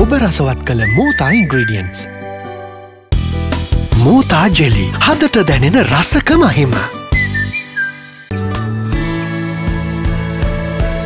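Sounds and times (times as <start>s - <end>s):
voice over bright music: 0.0s - 2.9s, 3.8s - 7.3s
whistled phrase: 0.6s - 2.2s, 7.0s - 8.3s.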